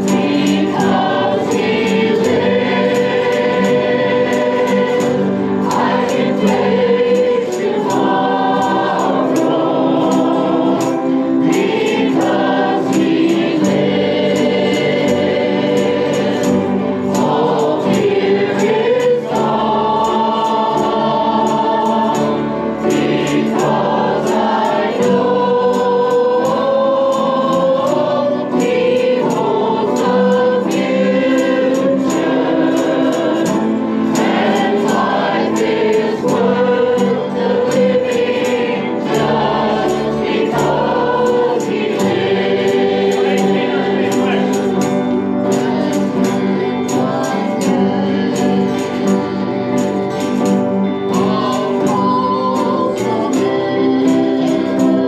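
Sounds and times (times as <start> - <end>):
women's choir singing gospel: 0.0 - 55.0.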